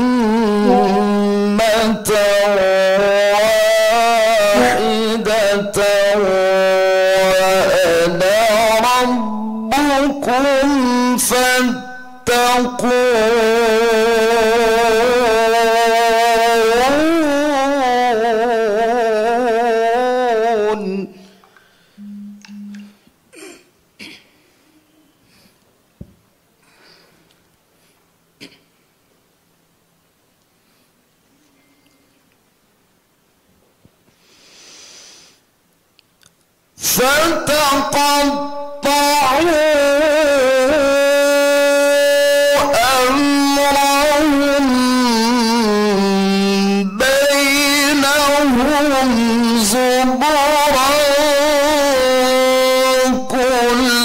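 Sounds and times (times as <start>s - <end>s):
man chanting melodically: 0.0s - 21.2s, 36.8s - 54.0s.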